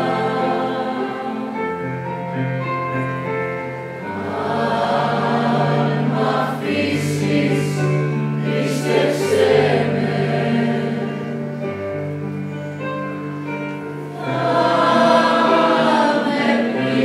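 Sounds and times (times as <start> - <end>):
mixed group singing: 0.0 - 1.8, 4.1 - 11.6, 14.1 - 17.0
piano accompaniment: 0.0 - 17.0.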